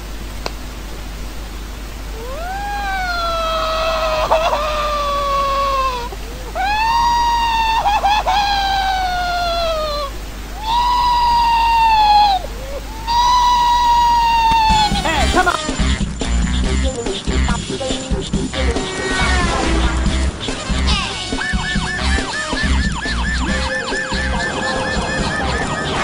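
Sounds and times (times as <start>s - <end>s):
cartoon boy wailing like baby: 2.1s - 15.8s.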